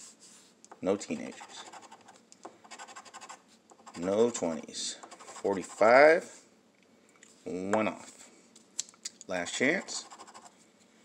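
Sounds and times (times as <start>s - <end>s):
coin scratching lottery ticket: 1.1s - 4.2s, 5.1s - 5.9s, 9.8s - 10.5s.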